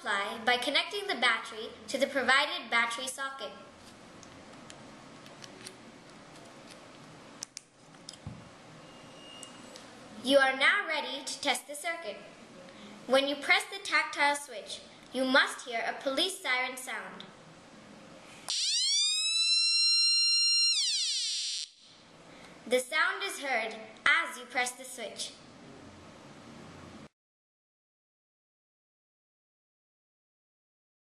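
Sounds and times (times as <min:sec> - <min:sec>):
electronic police siren: 0:18.5 - 0:21.8.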